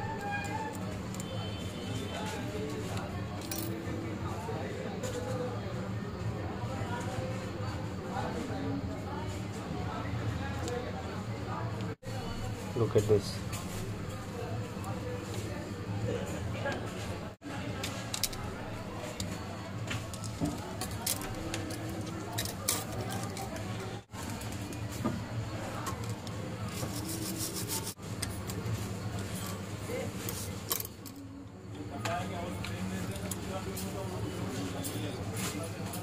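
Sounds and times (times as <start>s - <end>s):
faint background voices: 0.0s - 36.0s.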